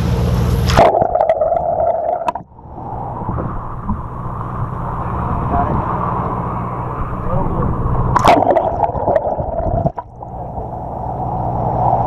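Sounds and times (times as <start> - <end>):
muffled boat engine drone: 0.0 - 12.0
water rushing and gurgling: 0.6 - 12.0.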